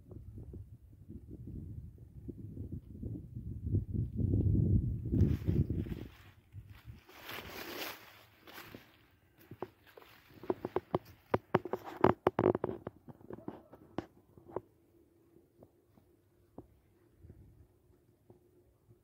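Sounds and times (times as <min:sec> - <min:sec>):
low microphone rumble: 0:00.0 - 0:18.9
footsteps crunching through brush: 0:05.1 - 0:14.0
twigs and leaves crackling: 0:05.2 - 0:13.9.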